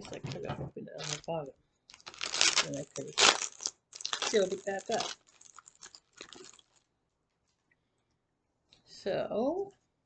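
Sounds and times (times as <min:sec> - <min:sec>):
packaging crinkling: 0:00.0 - 0:01.3, 0:01.9 - 0:06.9.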